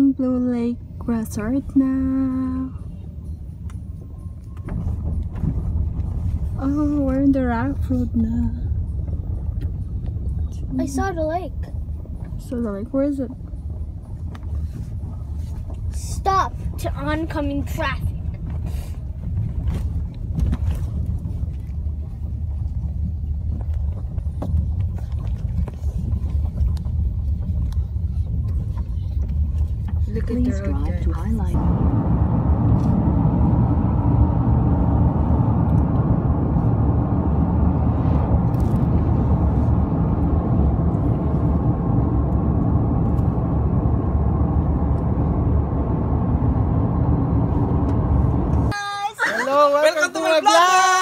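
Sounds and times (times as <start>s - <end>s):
car rumbling on rough road: 0.0s - 51.0s.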